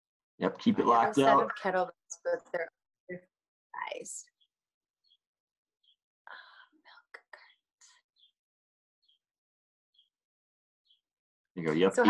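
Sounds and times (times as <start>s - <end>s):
faint whispered speech: 0.4s - 1.7s, 11.6s - 12.0s.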